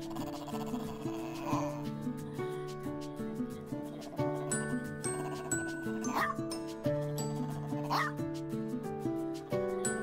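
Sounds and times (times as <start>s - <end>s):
dog yipping: 0.0s - 1.8s, 4.1s - 6.4s, 7.3s - 8.2s
background music: 0.0s - 10.0s.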